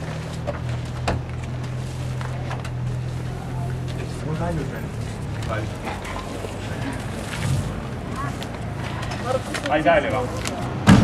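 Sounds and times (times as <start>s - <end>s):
low street rumble: 0.0s - 11.0s
faint voices: 2.0s - 10.8s.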